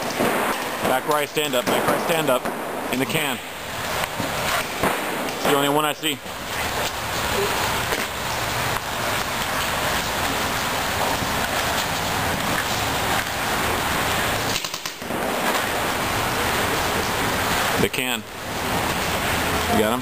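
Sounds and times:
voices: 0.6s - 8.2s.

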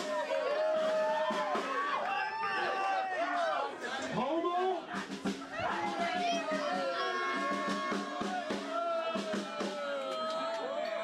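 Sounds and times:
people yelling and whooping: 0.0s - 11.0s.

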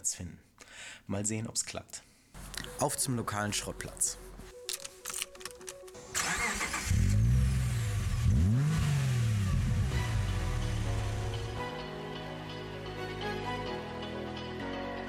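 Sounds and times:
background music: 2.4s - 15.0s
car engine idling: 6.0s - 11.6s
car engine starting and revving: 6.0s - 11.6s.

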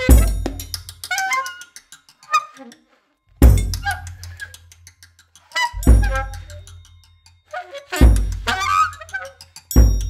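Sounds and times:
saxophone squeaky bending notes: 0.0s - 3.0s, 3.6s - 4.5s, 5.5s - 6.8s, 7.5s - 9.5s.

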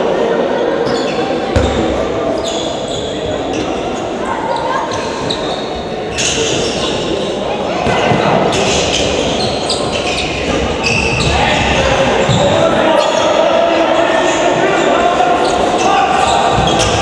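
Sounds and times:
voices calling and murmuring: 0.0s - 17.0s
sneakers squeaking: 0.8s - 13.4s, 14.1s - 17.0s.

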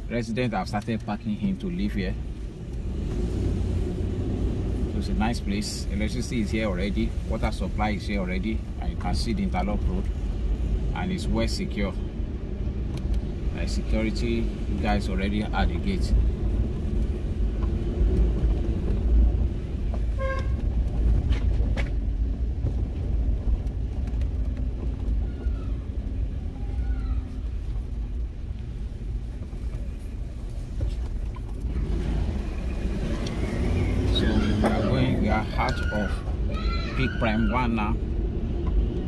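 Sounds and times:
engine and tyres rumbling: 0.0s - 39.0s.

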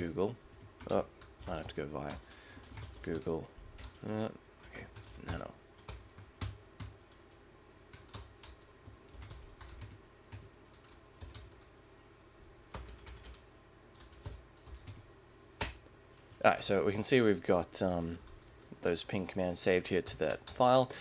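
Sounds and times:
computer keyboard typing: 0.5s - 4.2s, 4.8s - 11.8s, 12.7s - 15.8s.

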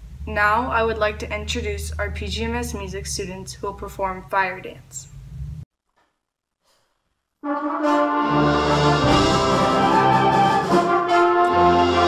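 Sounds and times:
concert band brass and woodwind chords: 7.4s - 12.0s.

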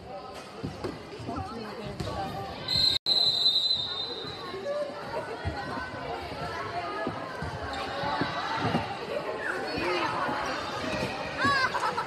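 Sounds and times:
crowd chatter: 0.0s - 12.0s
referee's whistle blast: 2.7s - 4.4s.

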